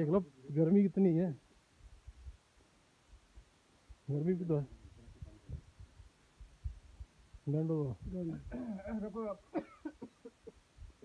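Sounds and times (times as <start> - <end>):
dull low thuds: 5.0 - 8.6
man speaking: 7.5 - 9.5.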